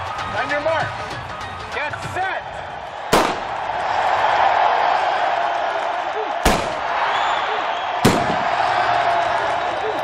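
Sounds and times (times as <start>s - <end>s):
stadium crowd cheering: 0.0s - 10.0s
starting pistol shot: 3.1s - 3.5s, 6.4s - 6.9s, 8.0s - 8.6s.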